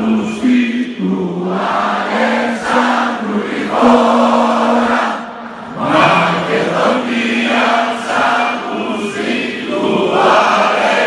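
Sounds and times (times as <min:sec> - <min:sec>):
crowd singing in unison: 0:00.0 - 0:11.0.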